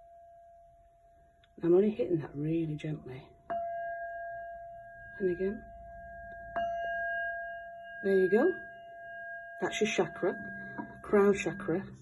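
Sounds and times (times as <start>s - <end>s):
singing bowl ringing: 0.0s - 12.0s
padded mallet striking bowl: 3.4s - 12.0s.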